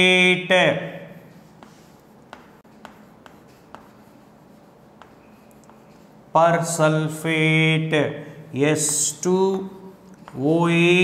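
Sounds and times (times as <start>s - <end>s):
chalk scratching on chalkboard: 1.0s - 6.8s, 8.6s - 11.0s
chalk tapping on chalkboard: 1.1s - 6.3s, 8.6s - 11.0s.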